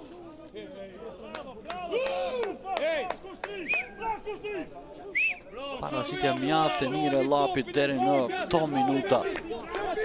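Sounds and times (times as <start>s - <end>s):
hand claps: 1.3s - 4.0s, 9.1s - 10.0s.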